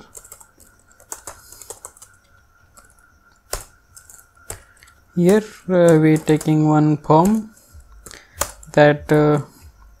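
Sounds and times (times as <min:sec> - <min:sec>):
computer keyboard typing: 0:00.0 - 0:09.4.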